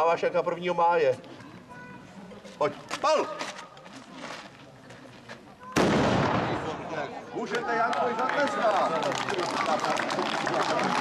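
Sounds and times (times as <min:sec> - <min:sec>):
small cannon firing bang: 0:05.8 - 0:06.8.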